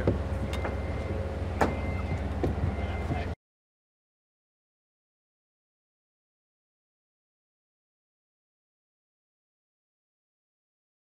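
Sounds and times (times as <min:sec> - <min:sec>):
low mechanical hum: 0:00.0 - 0:03.4.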